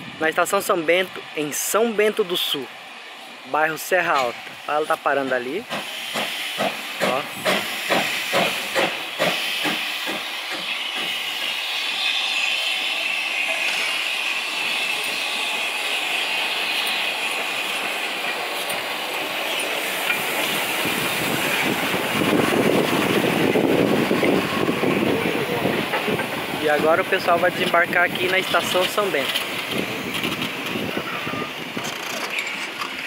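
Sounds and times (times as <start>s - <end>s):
hiss of escaping steam: 0.4s - 33.0s
steam locomotive rhythmic beats: 5.6s - 30.9s.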